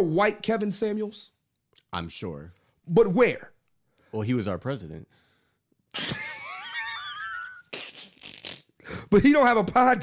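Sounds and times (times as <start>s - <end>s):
person laughing hard: 6.0s - 8.4s.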